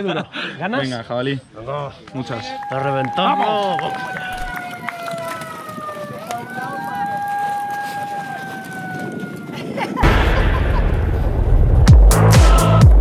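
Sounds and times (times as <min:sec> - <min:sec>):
rushing swell with deep bass: 0:10.0 - 0:13.0
electronic dance music: 0:11.9 - 0:13.0.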